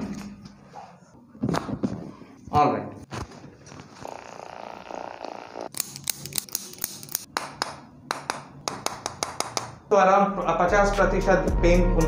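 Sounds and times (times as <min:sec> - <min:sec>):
mallet tapping adjusting tool: 0:07.3 - 0:09.8.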